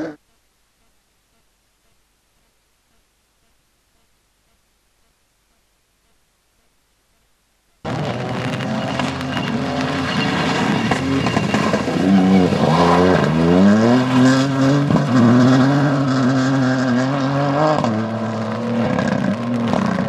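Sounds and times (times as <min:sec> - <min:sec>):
rally car engine revving: 0:07.8 - 0:20.0.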